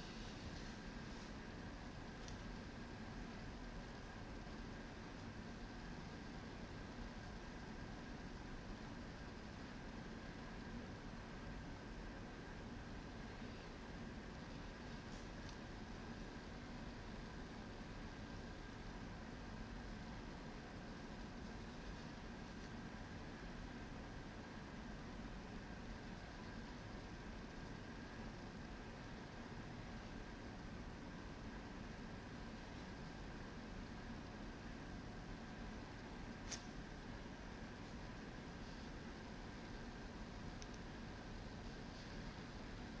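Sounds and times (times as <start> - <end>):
faint high whine: 0.0 - 43.0.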